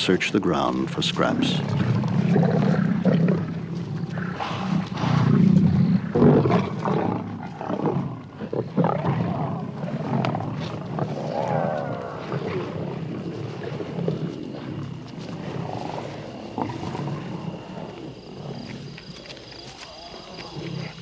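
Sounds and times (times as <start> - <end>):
lions growling and snarling: 0.0 - 21.0.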